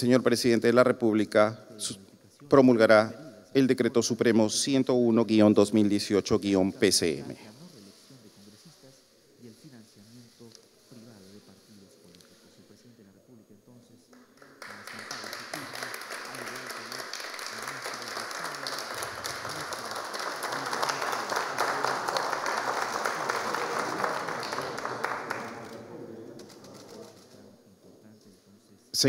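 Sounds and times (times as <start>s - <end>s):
applause: 14.1s - 25.9s.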